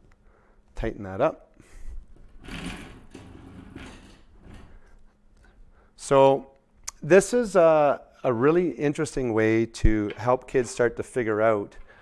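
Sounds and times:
objects rustling and scraping on table: 0:02.0 - 0:05.6.

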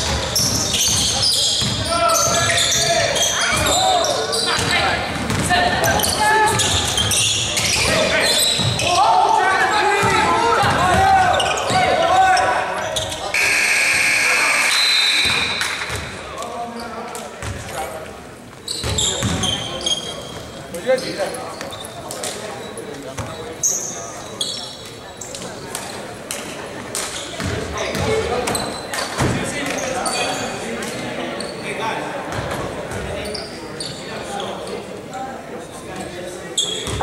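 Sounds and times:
players calling out: 0:05.7 - 0:16.9
steady high tone: 0:13.4 - 0:15.4.

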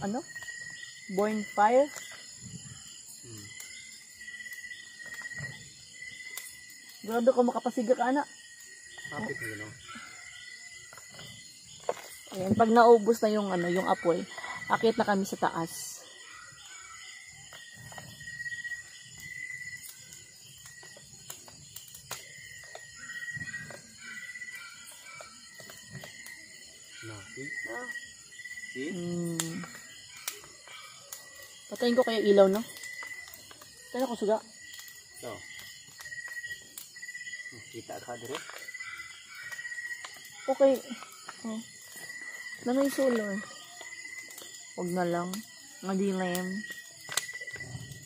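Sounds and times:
night insects trilling: 0:00.0 - 0:48.0
wood fire crackling: 0:00.0 - 0:48.0.

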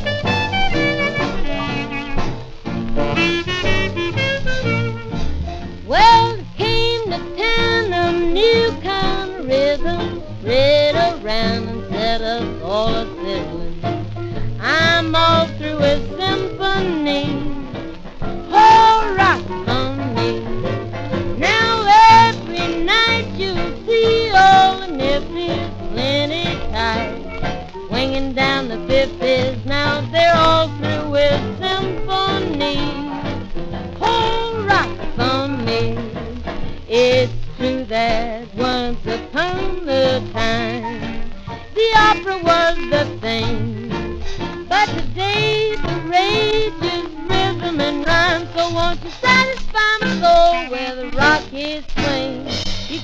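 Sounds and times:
old big band swing record: 0:00.0 - 0:53.0.

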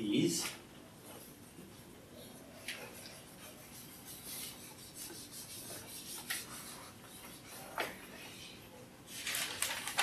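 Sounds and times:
eraser rubbing on whiteboard: 0:02.9 - 0:07.8.

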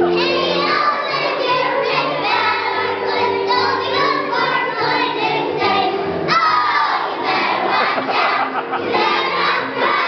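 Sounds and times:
children shouting and singing: 0:00.0 - 0:10.0.

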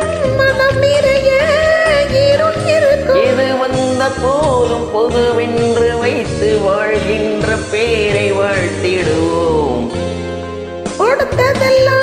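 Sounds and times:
person singing karaoke: 0:00.0 - 0:10.2
instrumental backing track: 0:00.0 - 0:12.0.

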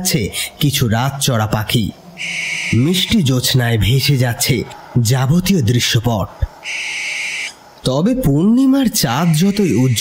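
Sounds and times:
owl screech: 0:02.2 - 0:03.2, 0:06.6 - 0:07.6, 0:09.1 - 0:10.0.

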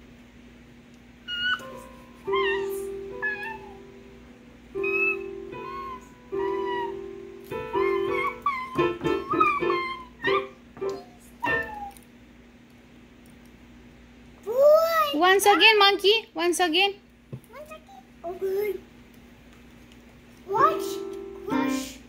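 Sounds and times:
digital piano notes: 0:01.6 - 0:12.0, 0:20.5 - 0:22.0.

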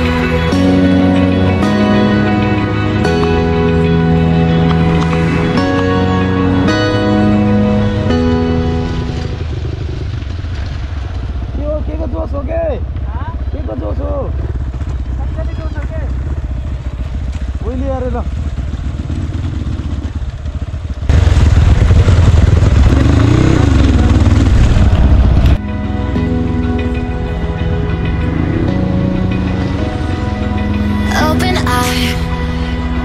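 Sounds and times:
dirt bike engine running: 0:00.0 - 0:31.4.

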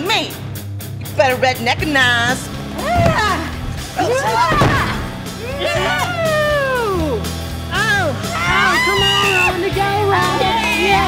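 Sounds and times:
background music: 0:00.0 - 0:11.0
person yelling: 0:04.0 - 0:07.2
person crying out: 0:05.4 - 0:07.2.

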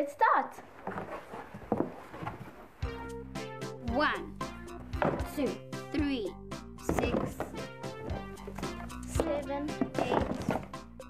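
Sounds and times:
cardboard boxes knocking and rustling: 0:00.8 - 0:02.6, 0:04.9 - 0:05.4, 0:06.9 - 0:10.8
background music: 0:02.7 - 0:11.0.

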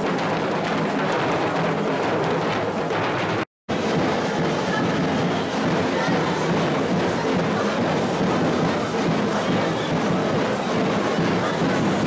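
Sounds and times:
snare drums: 0:00.0 - 0:12.0.

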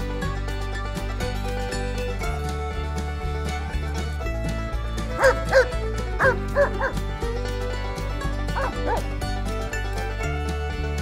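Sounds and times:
background music with a beat: 0:00.0 - 0:11.0
dog yelping: 0:05.2 - 0:07.0, 0:08.6 - 0:09.1.

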